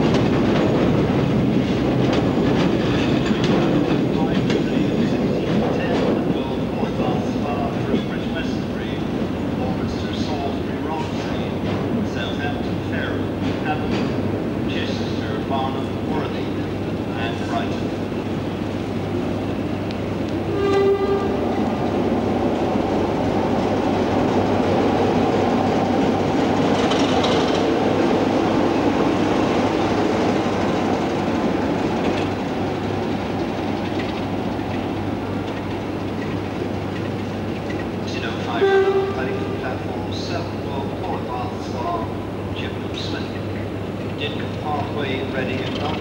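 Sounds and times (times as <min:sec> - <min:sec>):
diesel locomotive engine rumble: 0:00.0 - 0:46.0.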